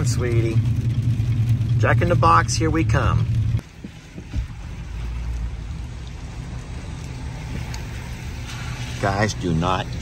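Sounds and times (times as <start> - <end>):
truck engine and road rumble: 0.0 - 10.0.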